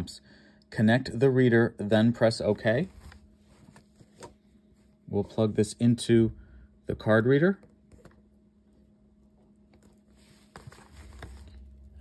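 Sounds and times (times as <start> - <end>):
faint steady hum: 0.0 - 12.0
handling rustling: 2.5 - 5.0, 9.4 - 12.0.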